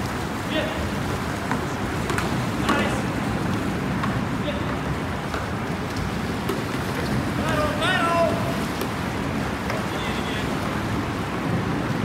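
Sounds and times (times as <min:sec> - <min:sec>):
players shouting across water: 0:02.4 - 0:03.4, 0:06.9 - 0:11.0.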